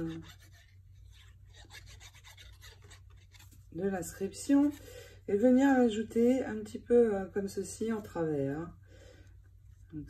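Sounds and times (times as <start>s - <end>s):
glue nozzle rubbing on paper: 0.0s - 3.5s.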